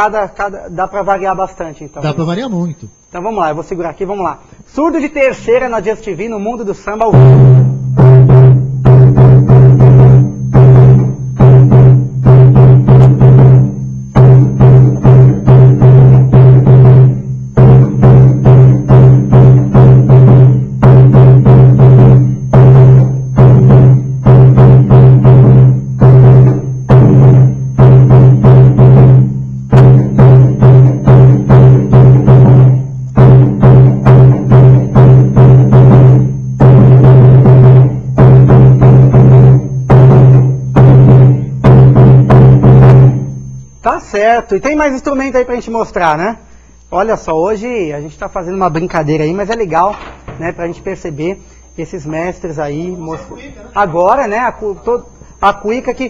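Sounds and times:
bass drum syncopated strokes: 6.4 - 45.8.

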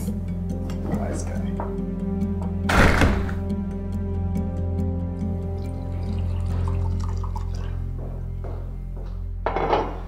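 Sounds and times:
background music with low drone: 0.0 - 10.0
glass set down on countertop: 9.4 - 10.0.

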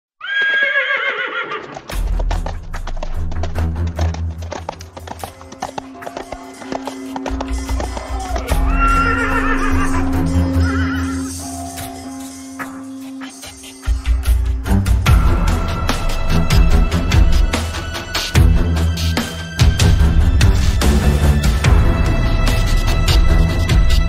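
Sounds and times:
horse neighing: 0.2 - 1.8, 8.1 - 11.3
hoofbeats: 0.2 - 11.2
background music with deep bass: 1.9 - 24.0.

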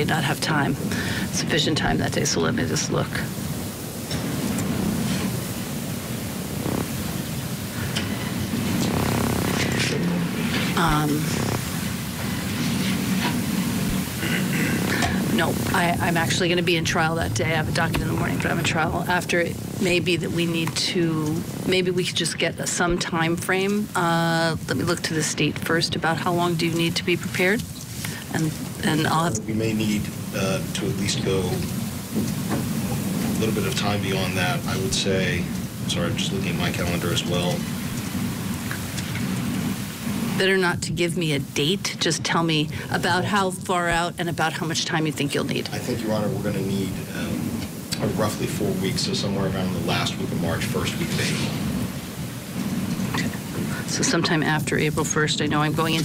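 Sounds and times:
low hum: 0.0 - 56.0
room noise hiss: 0.0 - 56.0.

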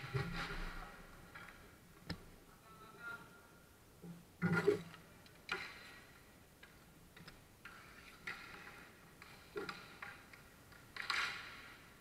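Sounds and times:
hockey sticks and ball clacking: 5.5 - 12.0.

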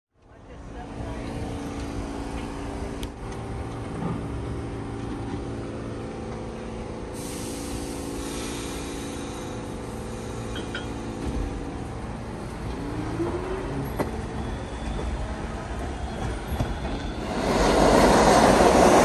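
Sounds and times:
subway train humming: 0.2 - 19.0
loud hiss of air: 7.1 - 11.2, 17.2 - 19.0.

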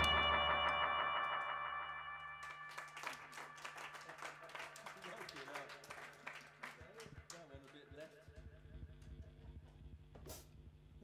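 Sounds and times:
guitar and synth chord: 0.0 - 2.8
audience clapping: 0.0 - 8.3.

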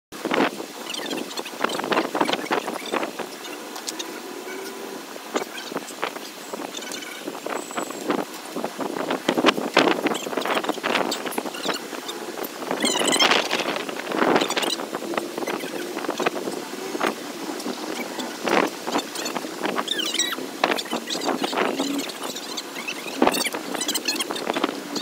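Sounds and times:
outdoor background noise: 0.1 - 25.0.

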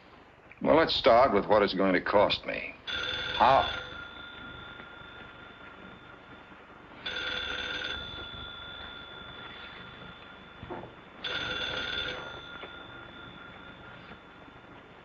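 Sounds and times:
telephone bell ringing: 2.9 - 15.0.

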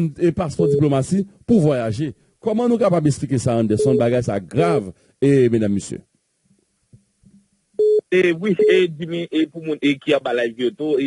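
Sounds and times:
man saying eh: 8.1 - 11.0.

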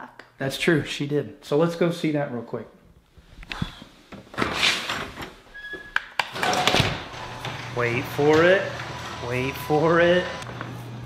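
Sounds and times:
door squeak: 4.4 - 10.4.

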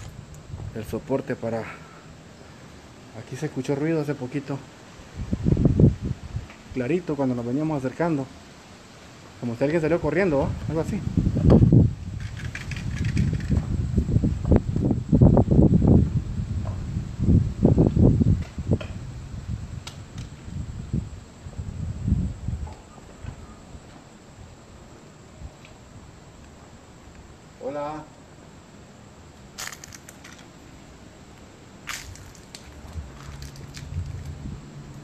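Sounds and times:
camera handling rumbles: 12.2 - 13.7, 29.6 - 30.5, 31.9 - 34.4.

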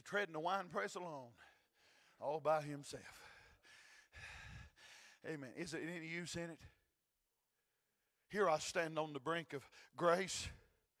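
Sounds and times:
man breathing into microphone: 3.1 - 5.2.

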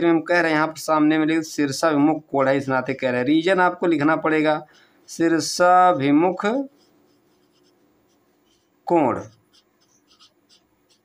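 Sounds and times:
man talking: 0.0 - 6.8, 8.9 - 9.4
felt-tip pen scratching on paper: 4.7 - 11.0.

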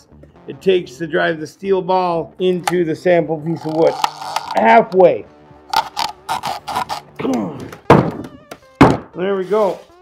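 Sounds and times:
person grunting: 7.2 - 7.8
hard thump: 7.6 - 9.2.

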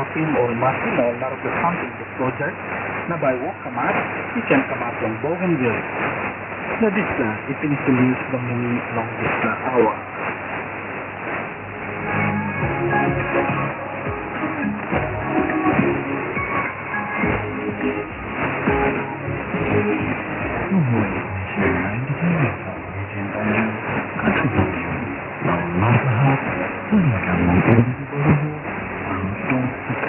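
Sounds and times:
shortwave radio static: 0.0 - 30.0.

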